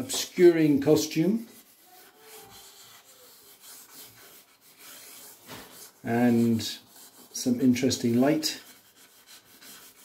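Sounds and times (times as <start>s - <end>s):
charcoal scratching on paper: 0.0s - 10.0s.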